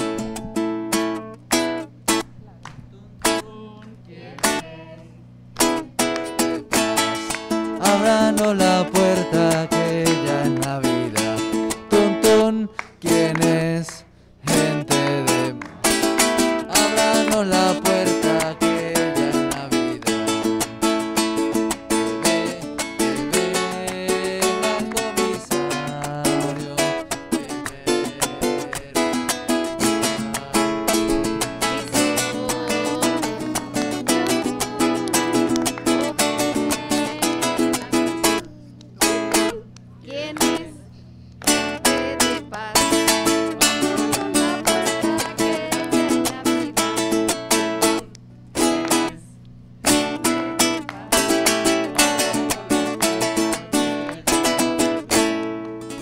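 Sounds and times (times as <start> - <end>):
acoustic guitar strumming: 0.0 - 56.0.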